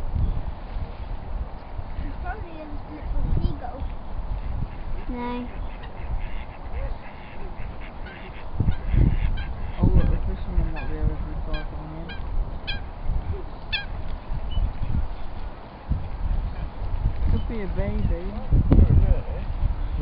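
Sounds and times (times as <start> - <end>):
ducks quacking: 4.3 - 14.0.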